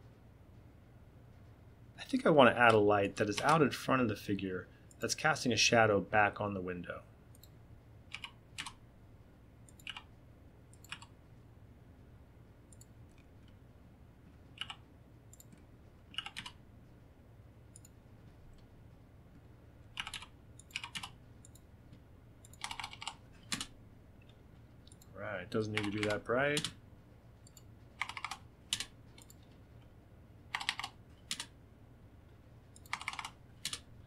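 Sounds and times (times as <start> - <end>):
faint low steady hum: 0.0 - 34.0
keyboard and mouse clicks: 2.6 - 3.6, 7.3 - 8.8, 9.6 - 10.1, 10.7 - 11.2, 12.7 - 13.6, 14.5 - 16.6, 17.7 - 18.7, 19.9 - 25.1, 25.8 - 26.8, 27.4 - 29.6, 30.5 - 31.5, 32.7 - 33.9.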